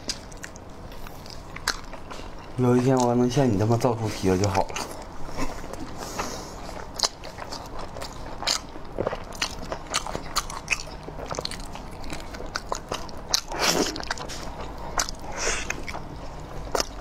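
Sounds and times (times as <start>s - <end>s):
lips and teeth clicking: 0.0s - 2.3s, 8.5s - 16.1s
wet biting and chewing: 0.0s - 3.2s, 4.5s - 17.0s.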